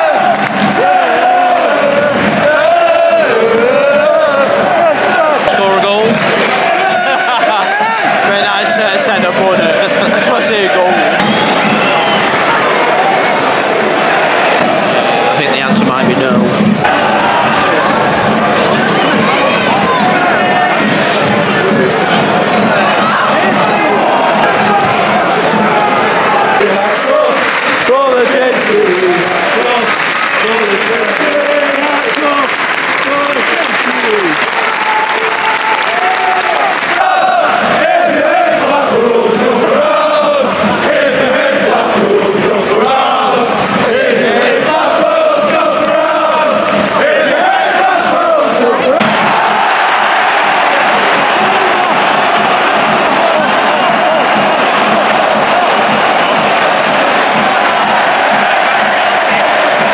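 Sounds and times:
crowd singing a chant: 0.0 - 34.5, 35.8 - 59.9
crowd roar: 0.0 - 59.9.

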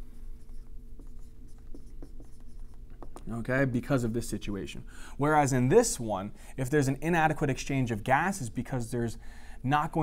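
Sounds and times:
marker scratching on whiteboard: 0.0 - 3.5.

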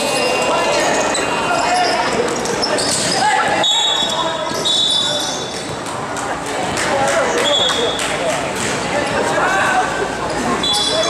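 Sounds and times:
echoing shouts: 0.0 - 5.6
high squeak: 10.6 - 11.0.

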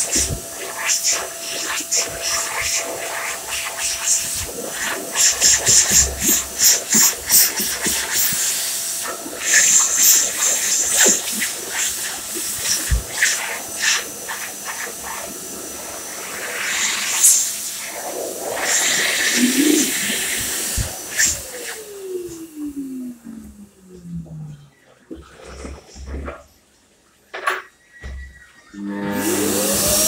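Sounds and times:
electric hand dryer blowing: 0.0 - 24.2, 28.7 - 30.0.

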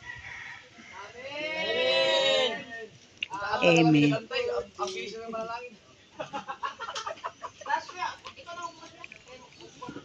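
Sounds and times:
people talking: 1.2 - 5.8
chickens clucking: 6.2 - 10.0.

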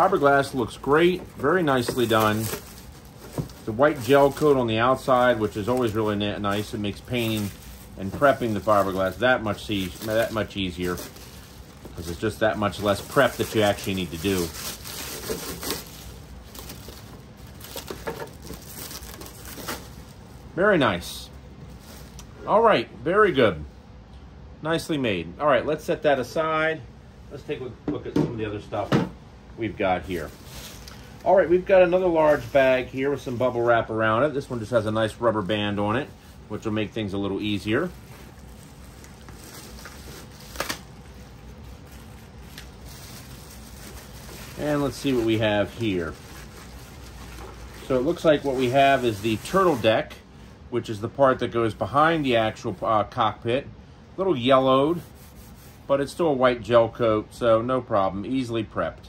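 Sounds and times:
plastic wrap crinkling: 0.0 - 22.3, 30.0 - 50.2.

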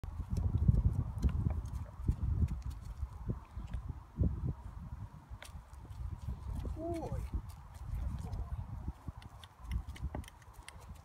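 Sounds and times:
hooves thudding on grass: 0.1 - 3.9, 5.4 - 11.0.

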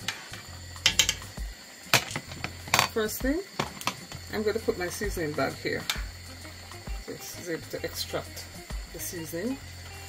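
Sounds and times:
metal spoon clinking on pot: 0.8 - 1.3.

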